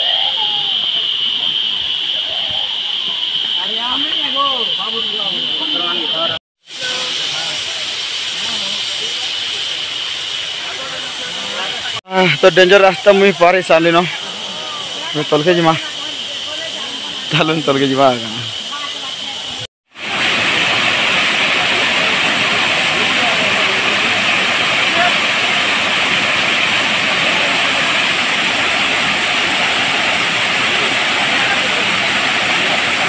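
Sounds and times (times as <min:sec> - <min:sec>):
cicadas droning: 0:00.0 - 0:33.0
waterfall over rocks: 0:06.7 - 0:33.0.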